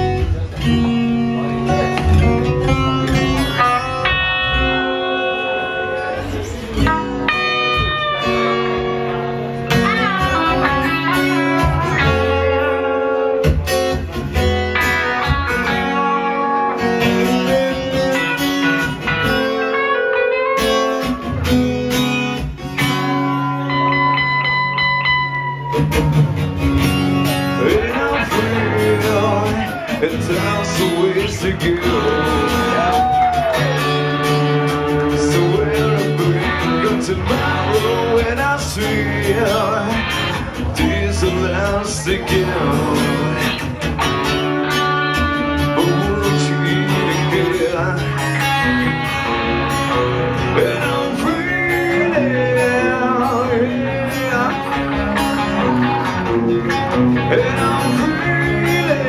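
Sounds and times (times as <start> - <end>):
live band playing guitars: 0.0 - 59.0.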